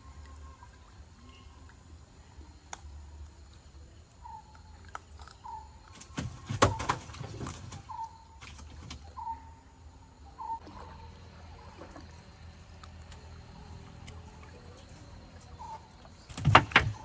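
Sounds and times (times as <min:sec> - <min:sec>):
bird call: 0:05.4 - 0:09.6, 0:10.2 - 0:11.2.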